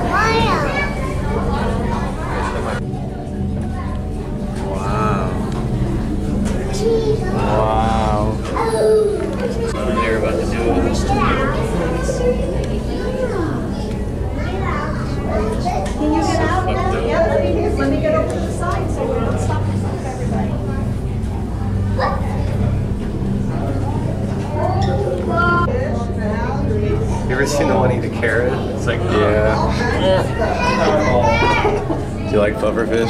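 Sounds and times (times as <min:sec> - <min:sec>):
children's voices in a crowd: 0:00.0 - 0:33.0
steady low hum: 0:00.0 - 0:33.0.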